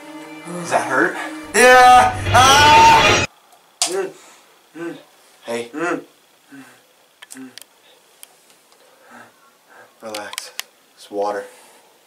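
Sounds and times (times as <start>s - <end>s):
man groaning in pain: 1.5s - 3.2s.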